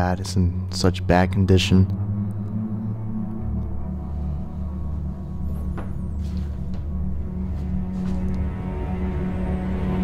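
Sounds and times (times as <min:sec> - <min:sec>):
dark ambient drone music: 0:00.0 - 0:10.0.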